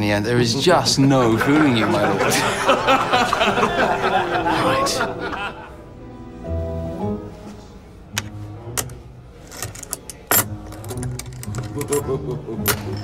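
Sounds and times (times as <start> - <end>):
low background music: 0.0 - 13.0
coins clinking on wood: 8.8 - 13.0.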